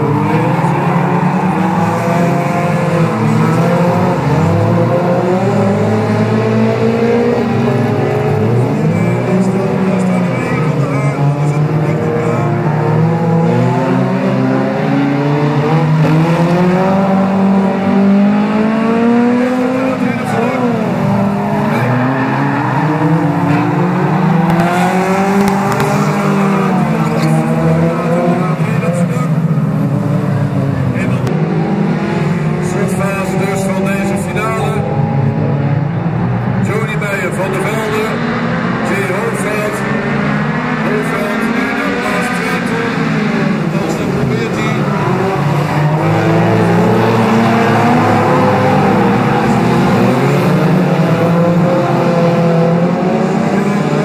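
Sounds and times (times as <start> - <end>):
racing car engines revving: 0.0 - 54.0.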